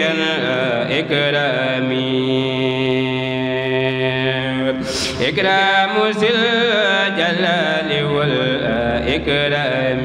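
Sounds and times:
person chanting unaccompanied: 0.0 - 10.0.

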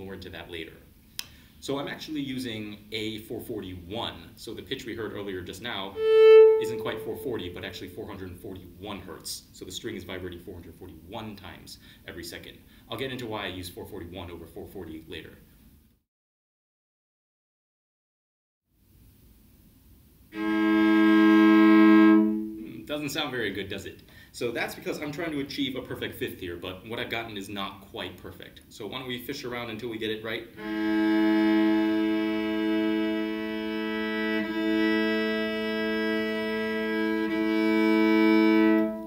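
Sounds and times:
cello bowed on two open strings: 5.7 - 8.2, 20.4 - 22.8, 30.6 - 39.0.

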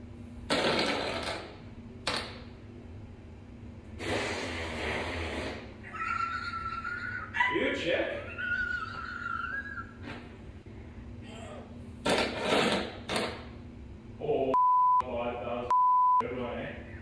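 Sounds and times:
censor bleeps: 14.6 - 15.1, 15.7 - 16.3.

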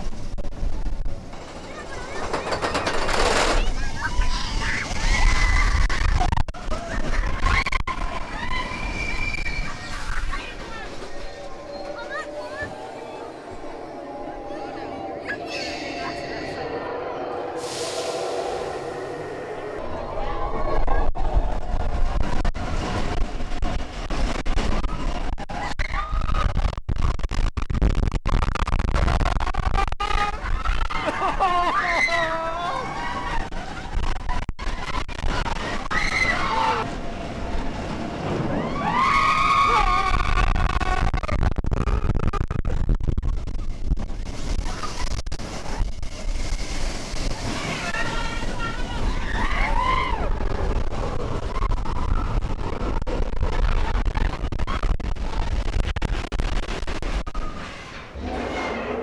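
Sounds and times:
roller coaster rumbling on track: 0.0 - 59.0
riders shouting and screaming: 2.2 - 15.4, 29.5 - 37.0, 46.5 - 53.0.

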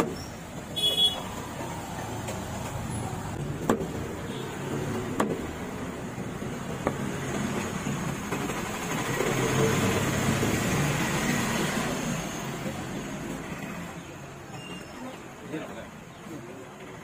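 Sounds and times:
motor vehicle passing by: 6.4 - 13.4.

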